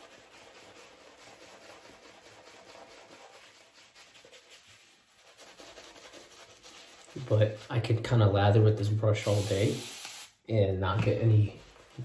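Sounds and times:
shaving brush rubbing on stubble: 0.0 - 7.9, 11.2 - 12.0.

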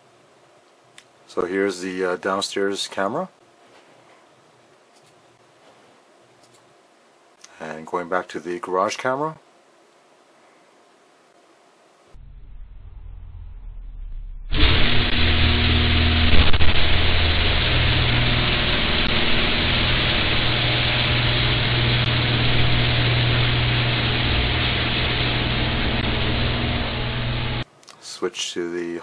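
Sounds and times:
garage door opener running: 14.5 - 27.6.

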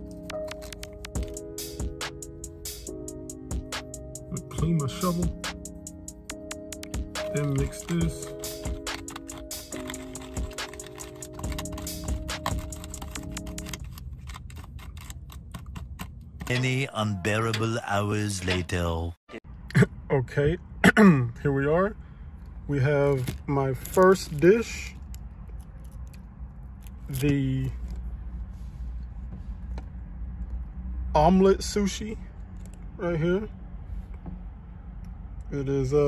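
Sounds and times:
background music with held chords: 0.0 - 13.8
plastic spoon scraping a tray: 7.3 - 15.3.

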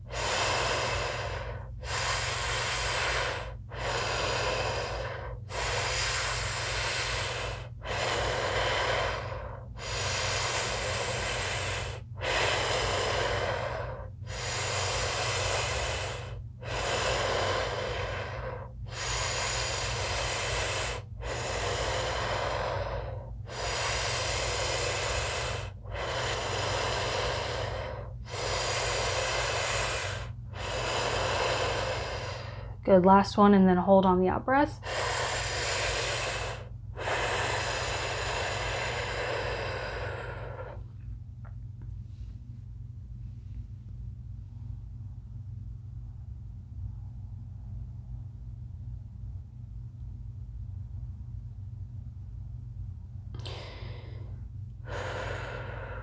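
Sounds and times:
woman breathing forcefully: 0.0 - 32.8, 34.7 - 41.0, 53.4 - 56.0
steady low hum: 0.0 - 56.0.

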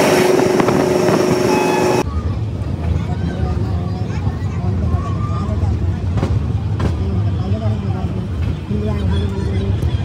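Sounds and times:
train rumbling: 0.0 - 10.0
passengers murmuring: 1.6 - 10.0.

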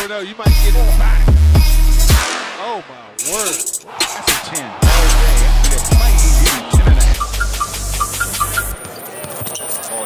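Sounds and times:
hip-hop beat: 0.0 - 8.9
arena noise: 2.6 - 10.0.

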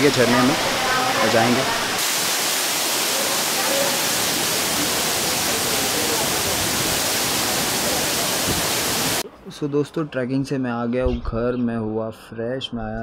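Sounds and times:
waterfall crashing onto rock: 0.0 - 9.2.

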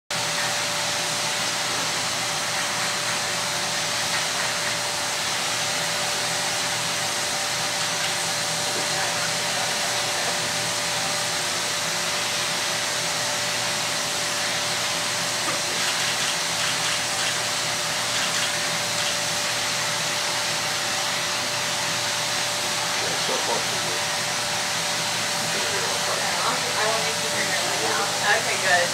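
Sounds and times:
airbrush blower rushing air: 0.2 - 28.9.

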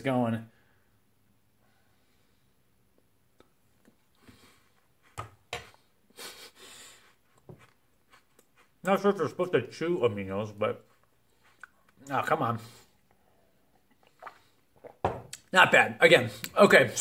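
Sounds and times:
chewing mouth clicks and smacks: 11.0 - 12.0.

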